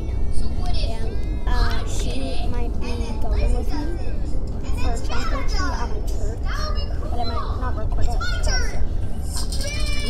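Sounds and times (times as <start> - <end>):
young children's high-pitched voices: 0.0 - 10.0.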